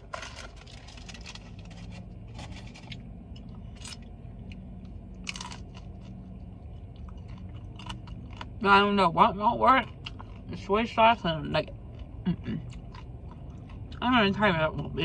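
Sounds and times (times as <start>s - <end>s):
crunchy chewing: 0.1s - 8.6s, 9.8s - 10.5s, 11.9s - 14.0s.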